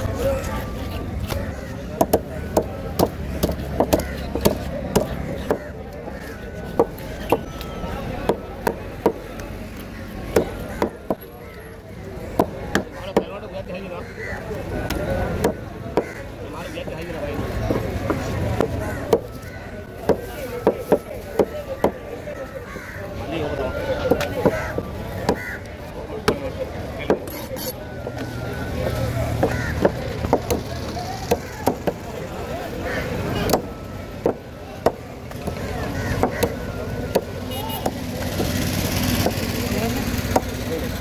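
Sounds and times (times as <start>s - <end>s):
cleaver chopping on wooden block: 2.0s - 5.7s, 10.3s - 11.2s, 12.3s - 13.3s, 27.0s - 27.7s, 29.3s - 32.0s, 33.4s - 40.6s.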